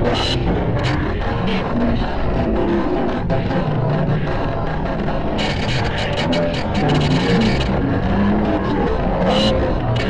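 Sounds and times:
heavily processed remix track: 0.0s - 10.0s.

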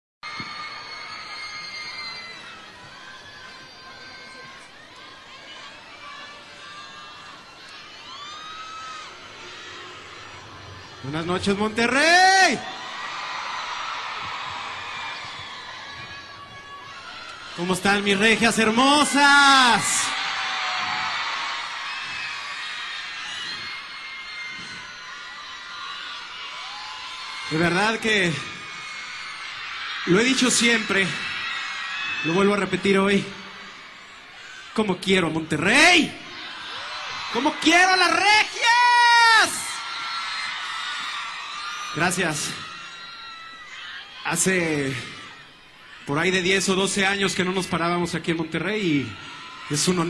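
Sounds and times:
concert crowd cheering and screaming: 0.2s - 50.0s.

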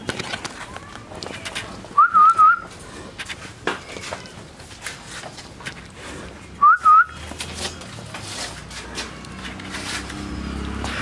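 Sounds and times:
rustling: 2.6s - 6.6s, 7.2s - 11.0s.

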